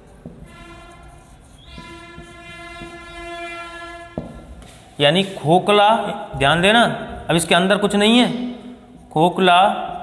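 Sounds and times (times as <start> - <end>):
marker tapping on whiteboard: 0.0 - 3.3, 4.1 - 4.8
horn long steady note: 0.4 - 4.6.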